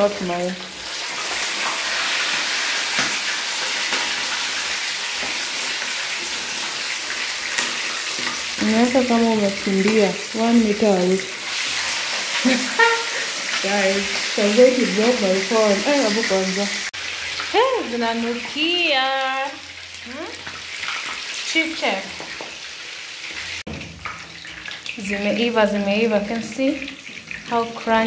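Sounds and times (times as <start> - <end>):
chicken sizzling in hot oil: 0.0 - 28.0.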